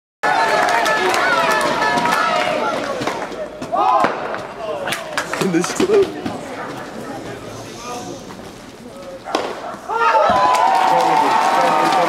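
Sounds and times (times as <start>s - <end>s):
crowd cheering and shouting: 0.2s - 4.8s, 9.7s - 12.0s
scattered claps: 0.5s - 3.4s, 4.0s - 6.2s.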